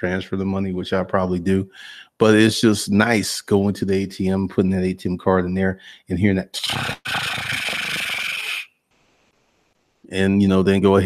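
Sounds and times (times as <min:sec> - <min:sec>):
man making breathy hiss with mouth: 0:06.6 - 0:08.7.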